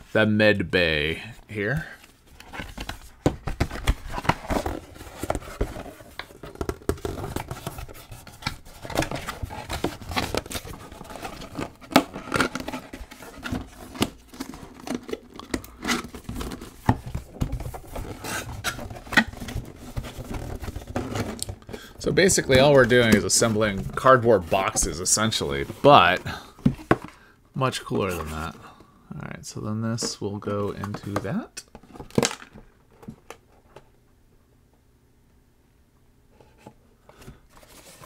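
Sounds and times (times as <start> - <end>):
cardboard scraping and rustling: 2.3 - 27.2, 36.4 - 38.0.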